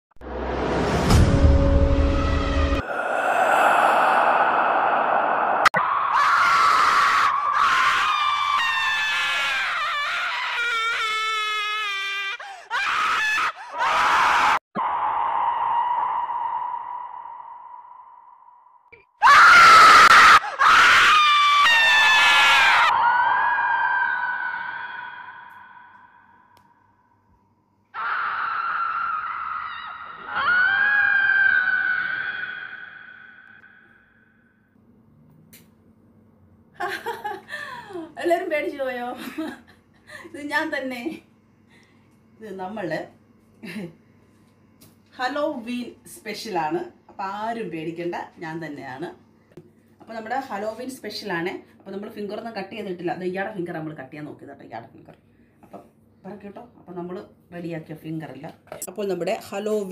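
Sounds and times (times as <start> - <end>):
long high-pitched screams: 2.8 - 26.6, 27.9 - 34.4.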